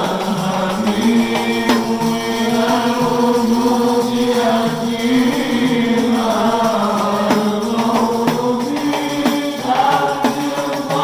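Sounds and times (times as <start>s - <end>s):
men chanting devotional song: 0.0s - 11.0s.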